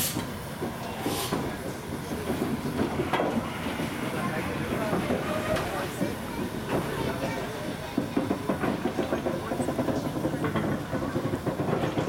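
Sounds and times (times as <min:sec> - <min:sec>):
steam hissing: 0:00.0 - 0:12.0.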